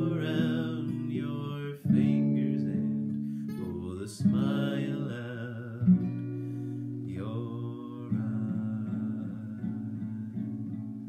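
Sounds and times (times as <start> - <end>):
man singing: 0.0 - 10.4
acoustic guitar strumming: 0.0 - 11.0.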